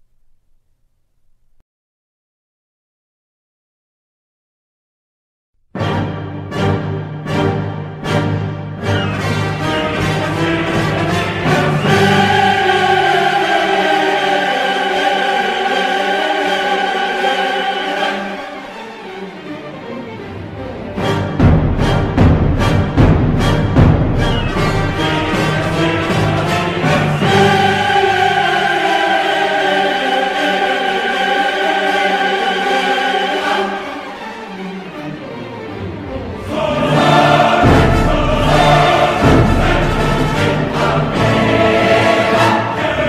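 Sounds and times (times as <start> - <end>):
choir and orchestra sustained chord: 5.8 - 43.0.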